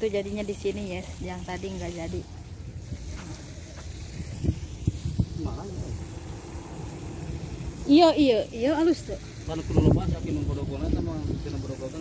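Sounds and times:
woman speaking: 0:00.0 - 0:02.3, 0:07.8 - 0:09.3
distant voices: 0:00.0 - 0:12.0.

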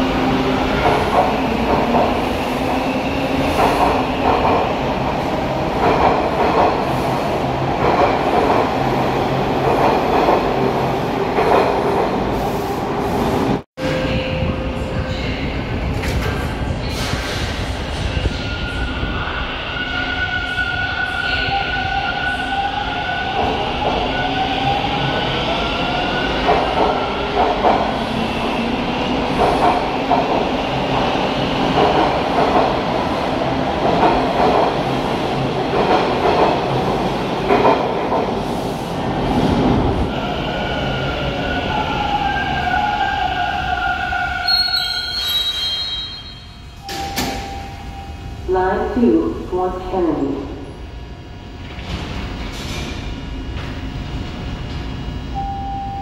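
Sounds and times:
train wheels squealing on rails: 0:44.2 - 0:47.7.

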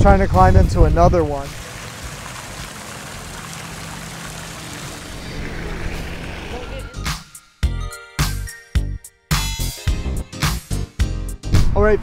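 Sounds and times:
fountain water splashing: 0:01.2 - 0:06.9
music with strong beat: 0:06.9 - 0:11.6.

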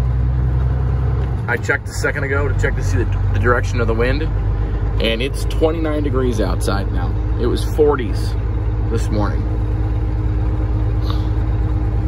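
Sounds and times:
diesel truck engine rumble: 0:00.0 - 0:12.0.

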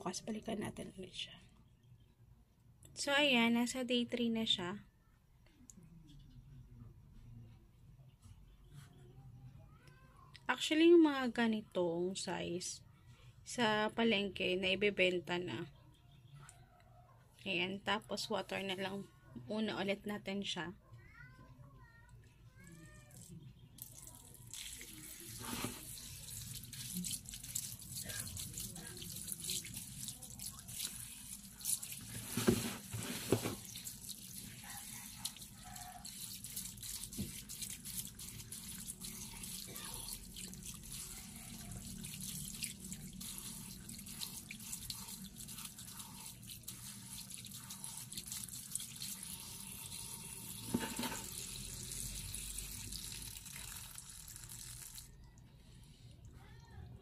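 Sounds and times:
water running into pot: 0:23.8 - 0:55.1
wet rustling of sprouts: 0:23.8 - 0:55.1.

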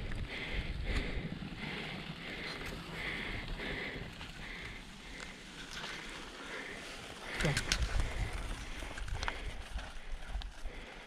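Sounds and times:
bike clicking and rattling: 0:00.0 - 0:11.0
bike tyres rumbling on dirt: 0:00.0 - 0:11.0.

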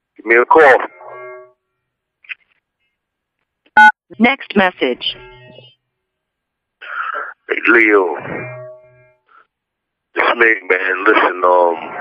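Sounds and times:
short electronic beep: 0:03.8 - 0:04.0.

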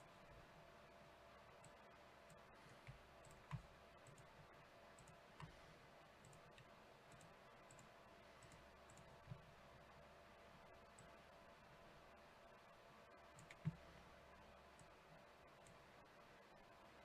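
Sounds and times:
computer mouse clicks: 0:01.6 - 0:05.6, 0:06.2 - 0:09.6, 0:10.8 - 0:11.2, 0:13.2 - 0:13.9, 0:14.7 - 0:15.8.

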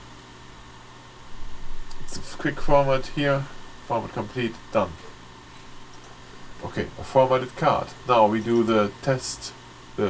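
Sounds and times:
background hiss with faint hum: 0:00.0 - 0:10.0.

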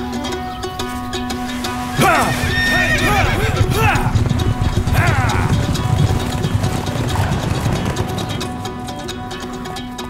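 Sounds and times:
background music: 0:00.0 - 0:10.0
hooves clopping: 0:00.0 - 0:10.0
horse whinnying: 0:01.5 - 0:08.6.

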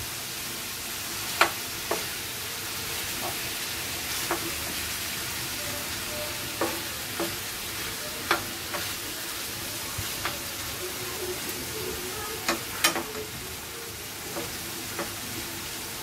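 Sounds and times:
meat sizzling in a frying pan: 0:00.0 - 0:16.0
spatula clacking against pan: 0:01.4 - 0:02.2, 0:04.1 - 0:04.6, 0:06.4 - 0:09.0, 0:12.4 - 0:13.4, 0:14.1 - 0:15.3.

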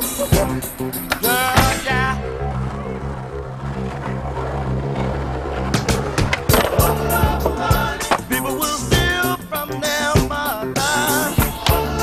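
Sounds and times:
skateboard clacking on ledge: 0:00.0 - 0:09.2
music with steady bass line: 0:00.0 - 0:12.0
skateboard wheels rolling on concrete: 0:00.0 - 0:12.0.

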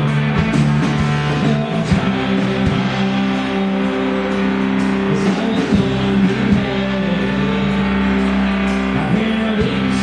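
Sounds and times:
live rock band: 0:00.0 - 0:10.0.

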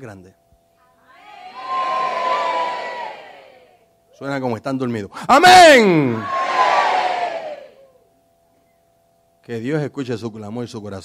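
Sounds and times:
congregation shouting together: 0:01.2 - 0:03.7, 0:05.3 - 0:07.8.

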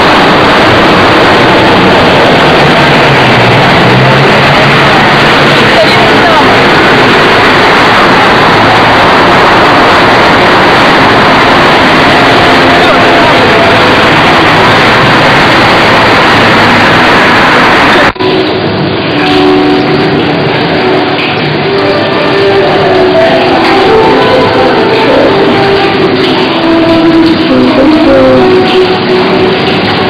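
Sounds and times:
loud steady rushing noise: 0:00.0 - 0:30.0
plucked string music: 0:18.2 - 0:30.0
faint person's voice: 0:27.3 - 0:28.8.

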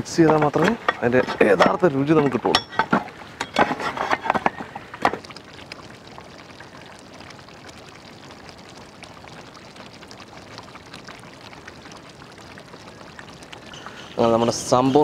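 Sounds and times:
curry bubbling in a pot: 0:00.0 - 0:15.0.

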